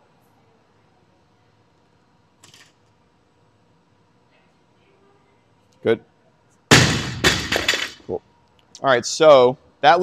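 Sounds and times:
barbell crashing onto gym floor: 6.7s - 8.1s.

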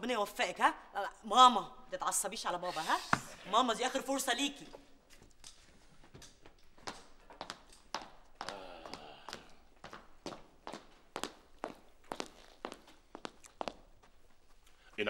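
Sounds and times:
footsteps on hard floor: 9.3s - 15.0s.

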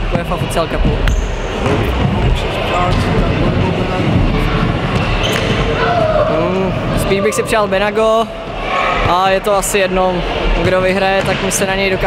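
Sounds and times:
indistinct voices: 0.0s - 10.6s.

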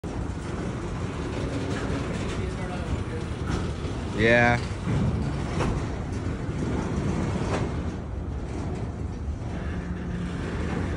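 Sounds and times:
train wheels rumbling on track: 0.0s - 10.9s.

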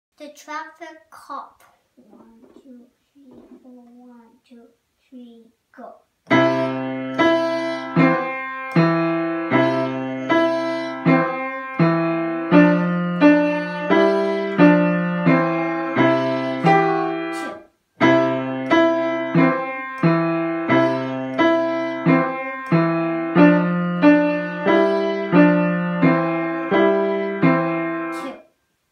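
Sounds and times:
upright piano playing: 6.3s - 28.3s.

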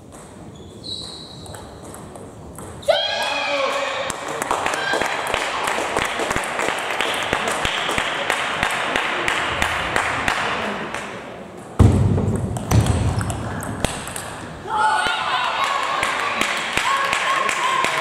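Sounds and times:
table tennis balls clicking: 0.0s - 2.8s, 11.0s - 14.6s
loud low thump: 11.8s - 13.2s.

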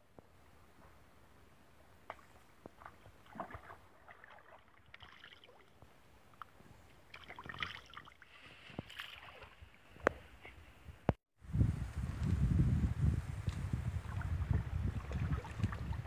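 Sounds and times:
stream water splashing: 2.0s - 9.8s, 13.7s - 16.0s.

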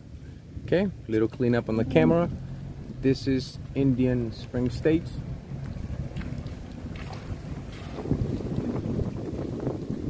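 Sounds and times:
car driving rumble: 0.0s - 10.0s
wind buffeting microphone: 0.4s - 10.0s.

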